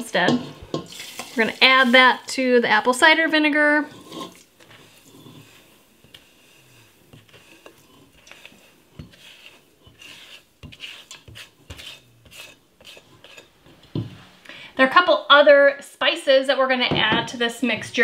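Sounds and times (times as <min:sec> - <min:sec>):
spatula scraping bowl: 0:00.0 - 0:14.4
sugar sliding into pot: 0:03.8 - 0:14.4.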